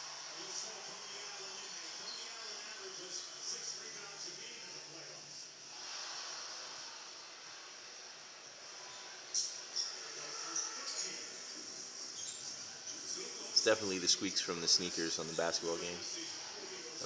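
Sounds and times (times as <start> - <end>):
faint broadcast voice: 12.6 - 17.0.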